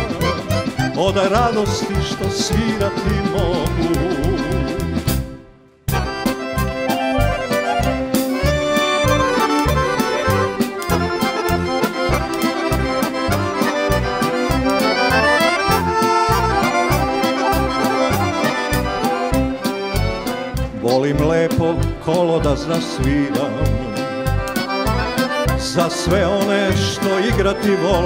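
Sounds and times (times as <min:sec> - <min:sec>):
accordions playing melody: 0:00.0 - 0:28.0
drum kit beat: 0:00.0 - 0:28.0.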